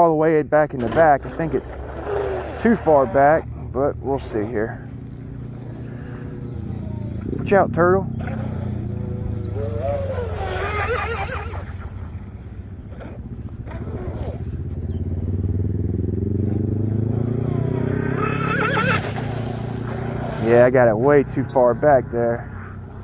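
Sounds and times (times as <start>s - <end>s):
model boat motor droning: 0.8s - 16.2s, 17.0s - 23.0s.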